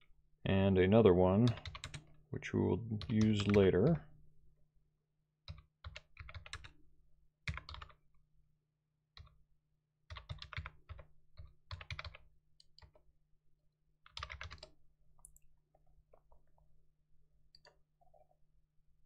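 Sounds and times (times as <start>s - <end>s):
computer keyboard typing: 1.5s - 2.2s, 3.0s - 3.7s, 5.5s - 6.7s, 7.5s - 8.0s, 10.1s - 13.0s, 14.0s - 15.4s.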